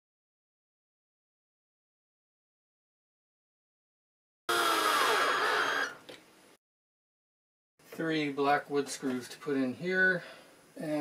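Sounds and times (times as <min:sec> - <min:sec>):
cordless drill motor whine: 0:04.5 - 0:06.0.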